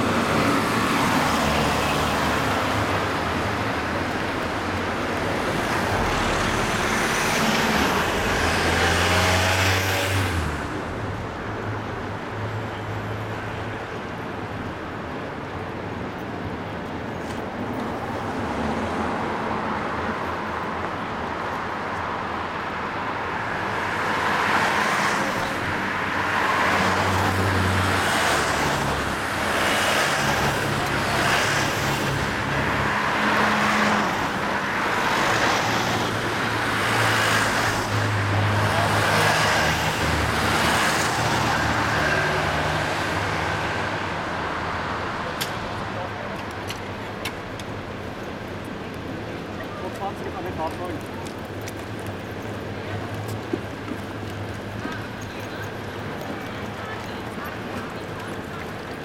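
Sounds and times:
vans driving past: 0.0 - 14.2, 17.6 - 59.0.

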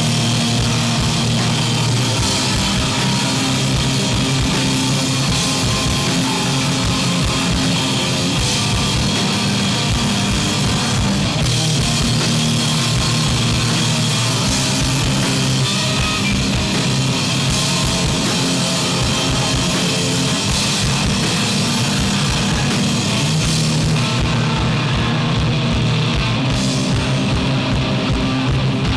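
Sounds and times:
bass guitar: 0.0 - 28.9
drum kit with cymbals: 0.0 - 28.9
electric guitar: 0.0 - 28.9
singer screaming: 17.8 - 25.7.

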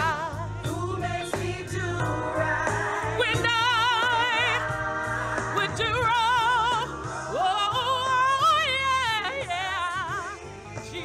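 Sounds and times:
woman singing gospel: 0.0 - 11.0.

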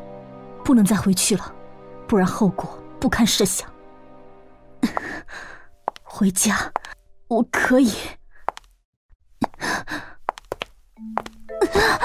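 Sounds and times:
soft background music: 0.0 - 8.2, 11.0 - 12.0.

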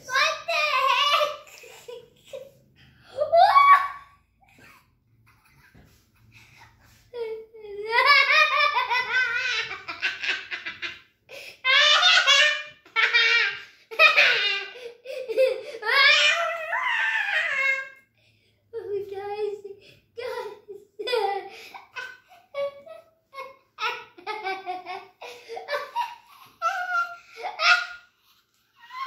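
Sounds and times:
boy laughing high-pitched: 3.2 - 11.0, 20.2 - 28.1.

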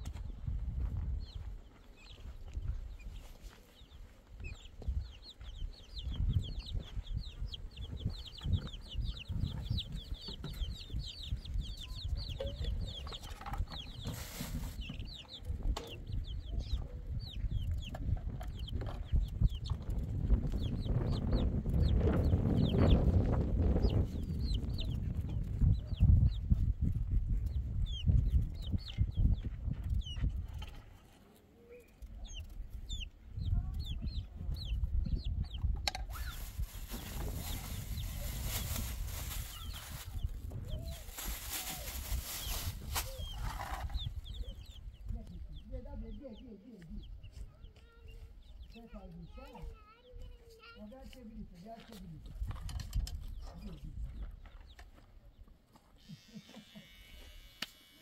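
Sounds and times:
chicks peeping: 0.0 - 57.8.

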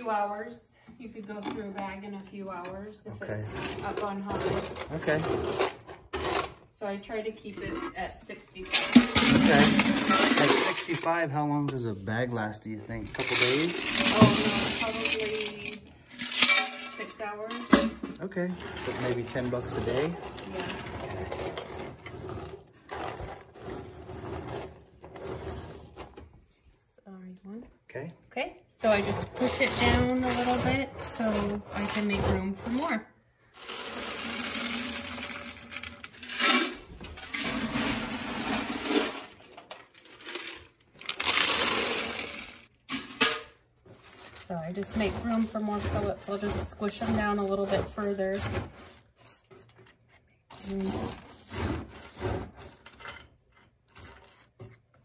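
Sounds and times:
wood pellets clinking: 8.7 - 11.2, 13.0 - 26.2, 33.6 - 43.4, 44.0 - 49.2.

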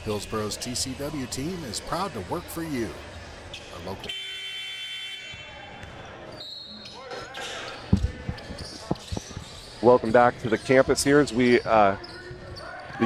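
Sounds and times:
faint crowd noise: 0.0 - 13.0
basketball bouncing on hardwood: 7.9 - 9.6.

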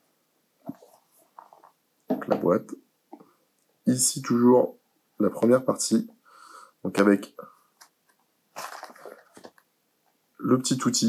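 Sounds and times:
stiff cardboard rustling: 8.6 - 9.6.

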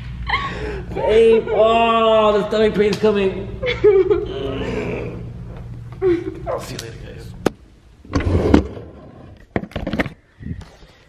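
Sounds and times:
man groaning: 4.3 - 5.4.

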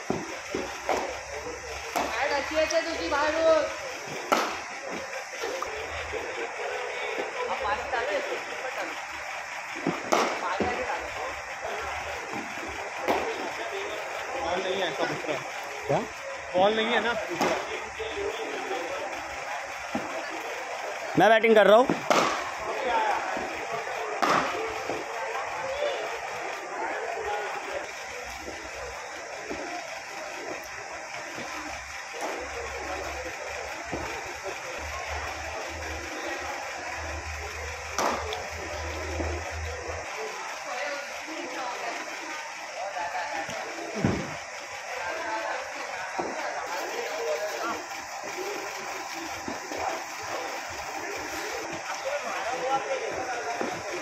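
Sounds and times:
chatter of voices: 0.0 - 54.0.

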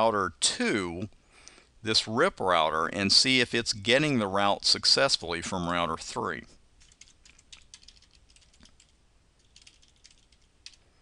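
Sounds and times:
faint keyboard keystrokes: 6.8 - 10.9.

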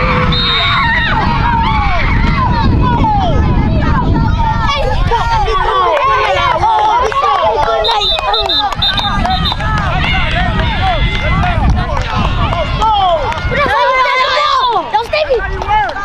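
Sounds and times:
low rumble: 0.0 - 5.6
children shouting excitedly: 0.0 - 16.0.

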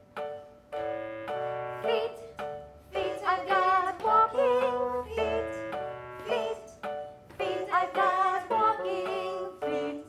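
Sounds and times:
bouncy keyboard chords: 0.0 - 10.0
person singing: 3.0 - 6.8, 7.4 - 10.0.

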